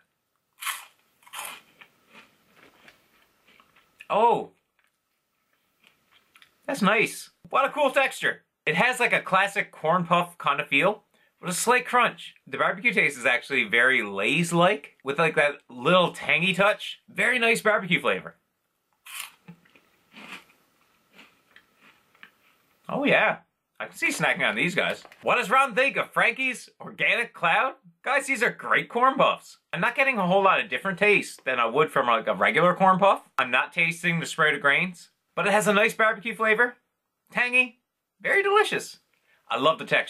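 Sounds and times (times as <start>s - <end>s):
crunching corn puff snack: 0.5s - 6.6s, 19.0s - 22.7s
soft chewing: 0.6s - 6.7s, 19.1s - 22.9s.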